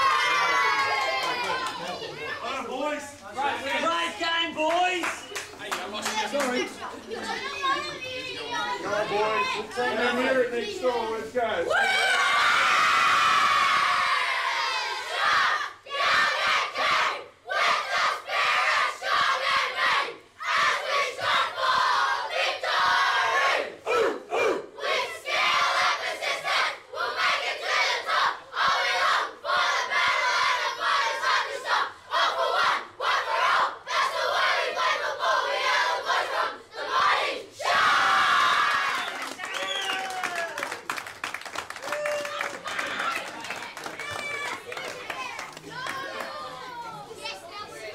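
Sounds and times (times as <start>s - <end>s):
boys shouting together: 0.0s - 2.6s, 11.7s - 39.1s.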